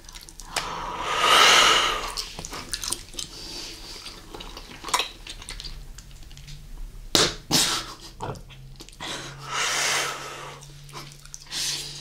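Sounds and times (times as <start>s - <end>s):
chewing gum mouth sounds: 0.0s - 0.7s, 2.1s - 6.6s, 8.0s - 9.0s, 10.6s - 12.0s
sharp gum snaps: 0.4s - 0.8s.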